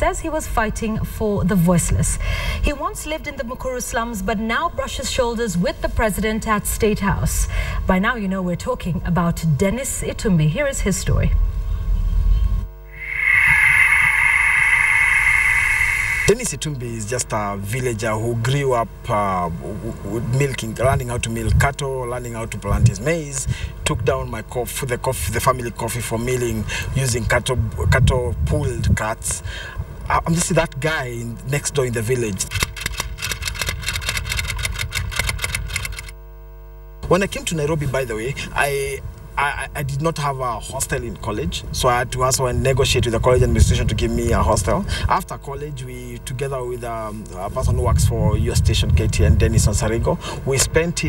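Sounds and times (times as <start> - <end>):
steady low hum: 10.9 - 28.4
rushing whoosh: 12.9 - 16.5.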